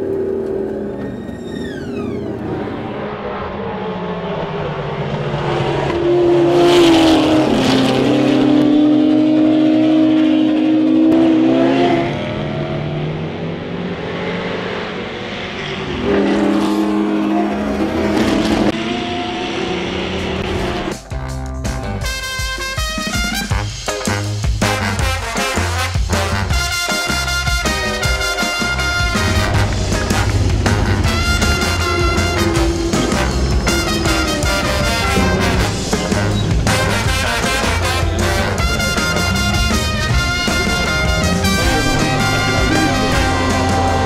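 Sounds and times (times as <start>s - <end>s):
race car engines passing by: 0.0s - 21.0s, 27.7s - 44.0s
music: 20.4s - 44.0s.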